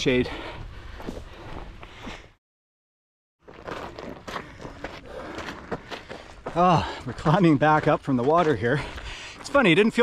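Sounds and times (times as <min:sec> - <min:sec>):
footsteps on dirt trail: 0:00.0 - 0:02.4, 0:03.4 - 0:10.0.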